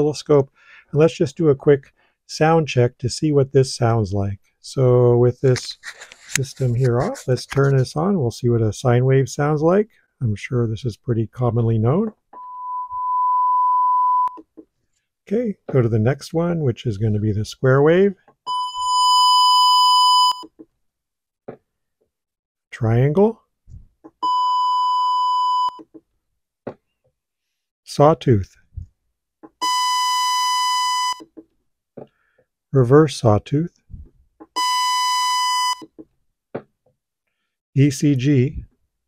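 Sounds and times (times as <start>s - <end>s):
sine wave test tone: 12.4s - 14.4s.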